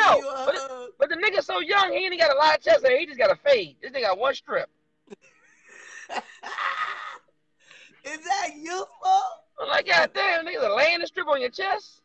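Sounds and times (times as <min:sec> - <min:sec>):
person wheezing laughter: 0:05.1 - 0:07.3.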